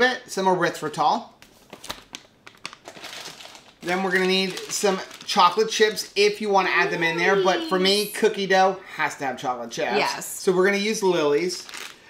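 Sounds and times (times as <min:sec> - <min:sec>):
plastic pouch crinkling: 0:01.4 - 0:07.6, 0:11.4 - 0:12.0.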